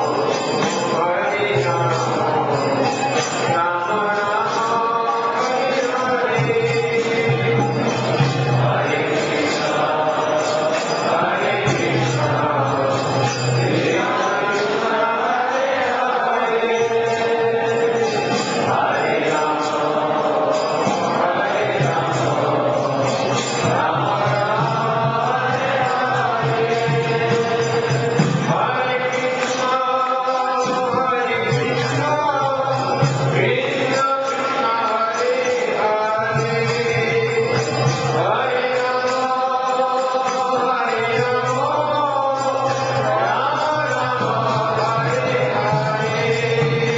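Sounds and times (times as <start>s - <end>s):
group of voices chanting: 0.0s - 31.8s.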